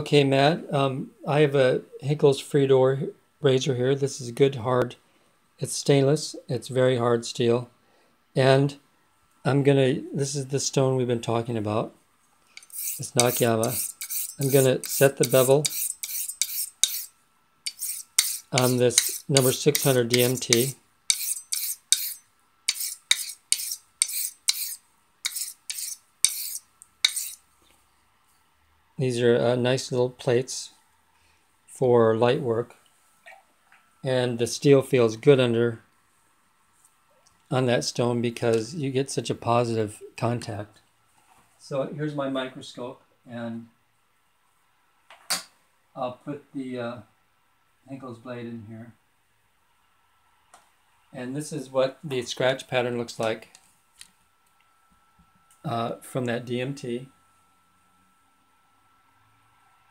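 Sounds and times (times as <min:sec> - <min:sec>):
razor scraping on sharpening plate: 0:12.6 - 0:17.1, 0:17.7 - 0:27.4.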